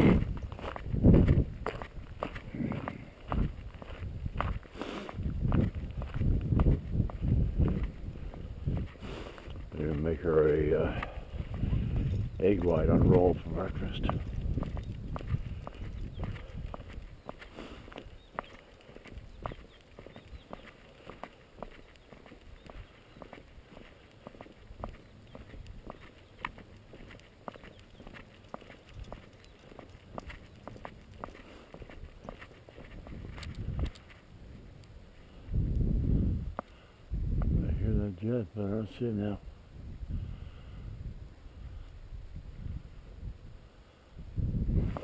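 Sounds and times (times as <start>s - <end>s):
footsteps on gravel: 0.0s - 34.7s
man's voice: 12.4s - 14.2s.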